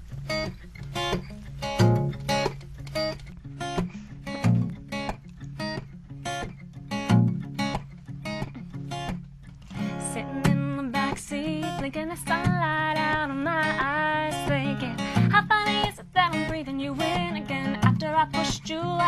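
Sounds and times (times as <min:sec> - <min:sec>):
acoustic guitar picked chords: 0:00.0 - 0:19.0.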